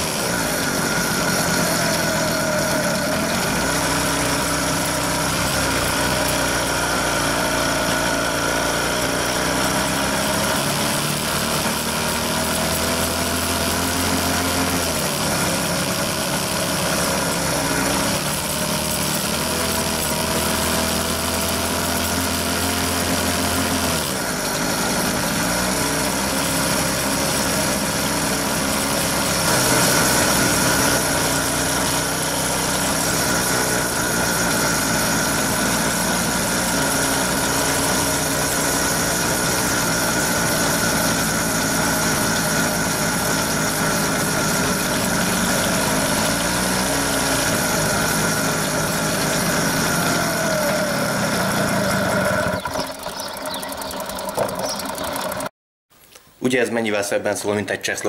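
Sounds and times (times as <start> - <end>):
moped engine revving: 0.0 - 55.5.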